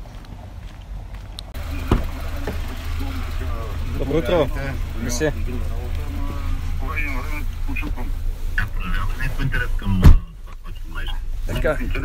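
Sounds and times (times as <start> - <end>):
car engine idling: 1.5 - 12.0.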